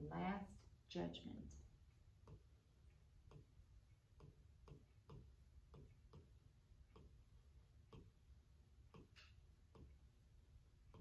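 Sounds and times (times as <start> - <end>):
faint ticking: 1.6 - 11.0.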